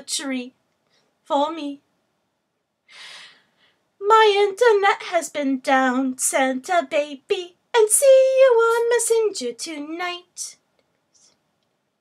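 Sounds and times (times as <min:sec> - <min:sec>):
woman breathing: 0:02.8 - 0:04.0.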